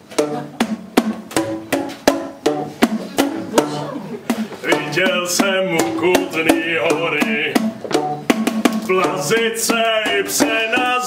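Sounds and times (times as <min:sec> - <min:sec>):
plastic percussion tubes struck: 0:00.0 - 0:11.0.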